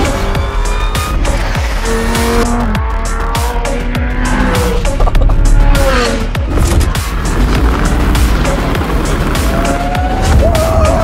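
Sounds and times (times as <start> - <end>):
car engine revving: 0.0 - 10.0
background music: 0.0 - 11.0.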